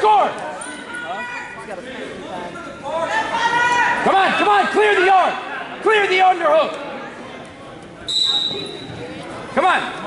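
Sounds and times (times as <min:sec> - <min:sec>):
referee's whistle: 0:08.1 - 0:08.9.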